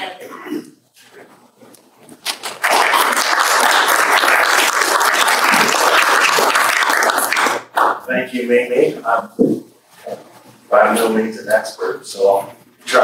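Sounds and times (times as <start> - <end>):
audience applauding: 2.3 - 8.0.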